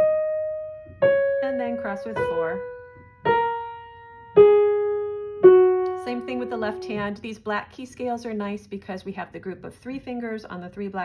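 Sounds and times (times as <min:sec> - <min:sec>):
piano notes ringing: 0:00.0 - 0:07.4.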